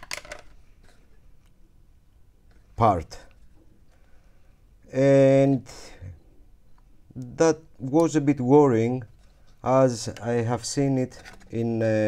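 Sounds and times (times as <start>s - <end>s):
plastic clicks and rattles: 0.0s - 1.0s.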